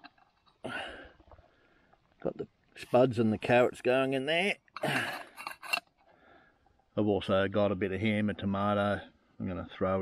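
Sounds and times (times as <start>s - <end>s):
metal lid clinking: 4.8s - 5.9s
metal lid scraping on pot: 5.0s - 5.9s.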